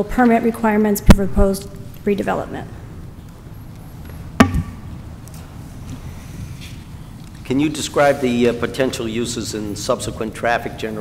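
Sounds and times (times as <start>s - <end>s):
sharp knock: 4.4s - 4.8s
low thud: 4.4s - 4.9s.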